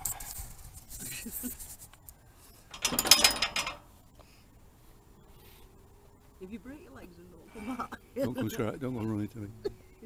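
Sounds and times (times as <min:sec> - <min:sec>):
steel hatch scraping open: 0:02.7 - 0:03.8.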